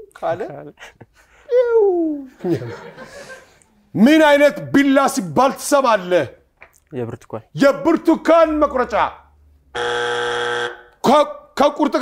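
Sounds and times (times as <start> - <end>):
game show buzzer tone: 9.7 - 11.0.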